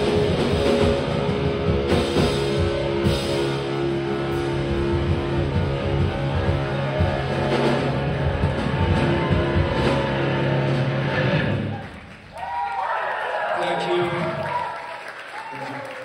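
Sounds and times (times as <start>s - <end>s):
live rock band playing: 0.0s - 12.2s
crowd cheering: 4.1s - 16.0s.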